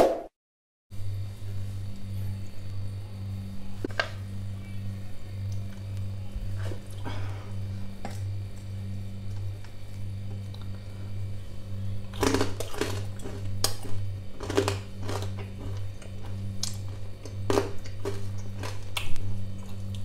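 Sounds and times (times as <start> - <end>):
steady low hum: 0.9 - 20.0
crunching bites into crispy pork skin: 12.0 - 20.0.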